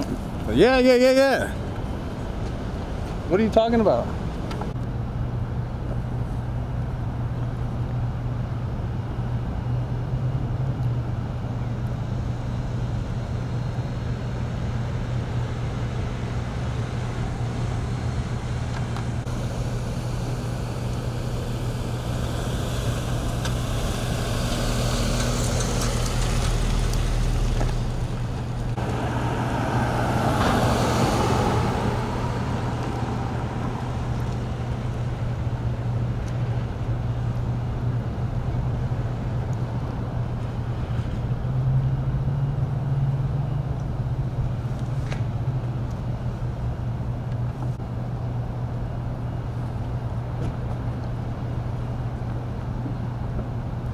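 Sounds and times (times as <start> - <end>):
low traffic hum: 0.0 - 53.9
vehicles passing: 0.0 - 53.9.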